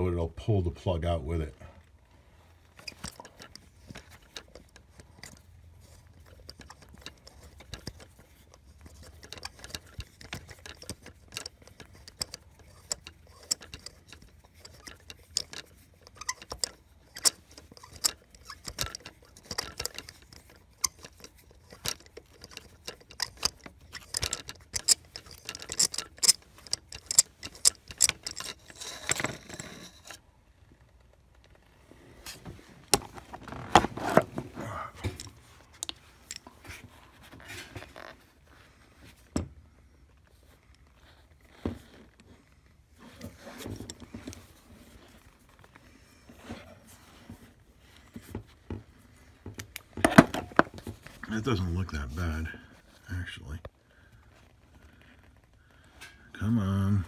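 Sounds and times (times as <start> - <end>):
metal taps and rattles: 2.8 - 30.2
ratchet clicking: 6.3 - 29.7.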